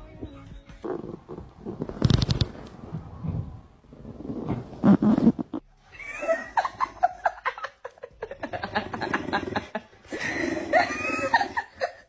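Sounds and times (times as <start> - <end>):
background music: 0.0 - 1.1, 5.6 - 12.0.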